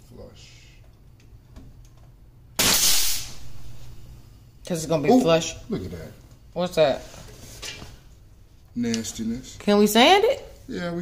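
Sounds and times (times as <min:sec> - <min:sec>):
nail gun firing into wood: 0:02.6 - 0:03.4.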